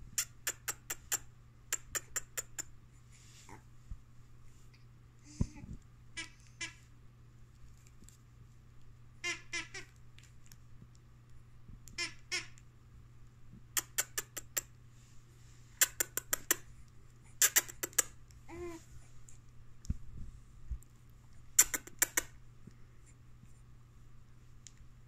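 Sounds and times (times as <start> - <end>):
sharp clicks: 15.8 - 16.6, 21.6 - 22.3.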